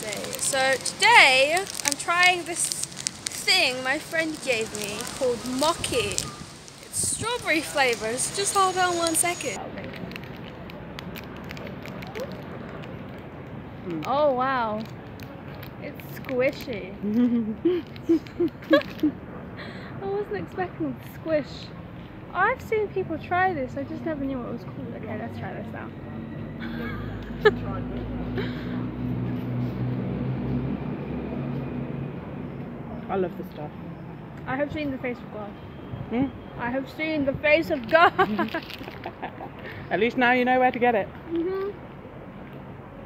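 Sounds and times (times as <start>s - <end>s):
plastic wrapper crinkling: 0.0s - 13.2s, 37.8s - 39.1s
street background noise: 0.0s - 43.0s.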